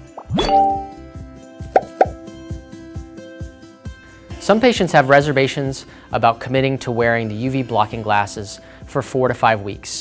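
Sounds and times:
background music with steady beat: 0.0s - 10.0s
bright chime: 0.2s - 1.0s.

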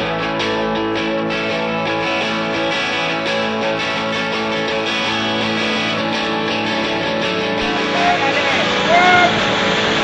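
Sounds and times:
whitewater rapids rushing: 7.6s - 10.0s
person calling out: 7.7s - 9.4s.

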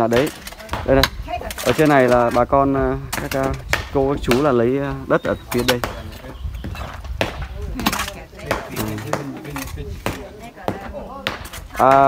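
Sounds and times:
hoes and shovels striking earth: 0.0s - 12.0s.

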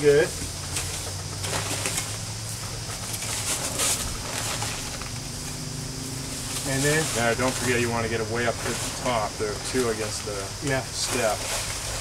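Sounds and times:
rake scraping through sand: 0.0s - 12.0s
steady low hum: 0.0s - 12.0s.

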